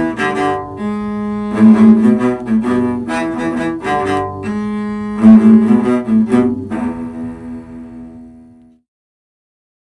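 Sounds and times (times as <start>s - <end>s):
cello bowed notes: 0.0s - 8.8s.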